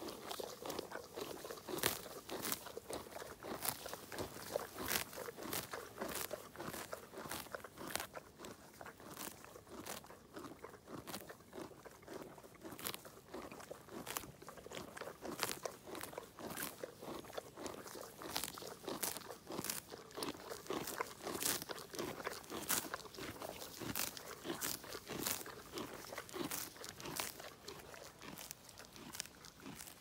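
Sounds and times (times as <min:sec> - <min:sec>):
pony tearing and chewing grass: 0:00.0 - 0:30.0.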